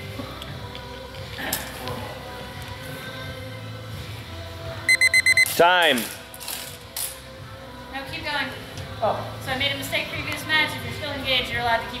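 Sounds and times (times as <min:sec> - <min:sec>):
background music: 0:00.0 - 0:12.0
timer beeping: 0:04.9 - 0:05.5.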